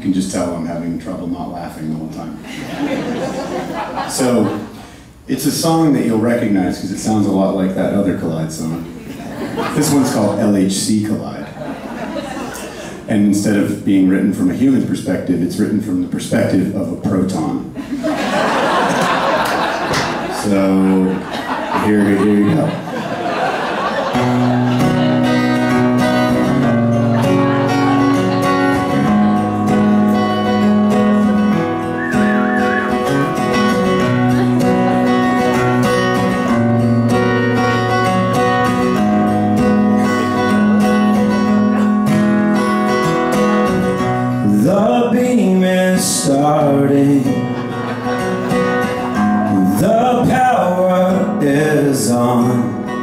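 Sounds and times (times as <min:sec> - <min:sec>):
guitar strumming ringing chords: 0:24.1 - 0:45.4, 0:47.0 - 0:53.0.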